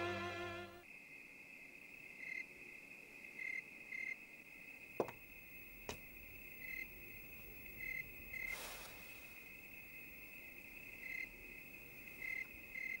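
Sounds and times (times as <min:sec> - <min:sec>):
crickets chirping: 0:00.1 - 0:13.0.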